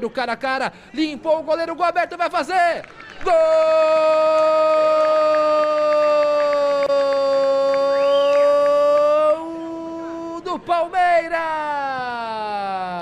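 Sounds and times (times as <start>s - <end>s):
commentator's long goal cry: 3.3s - 8.0s.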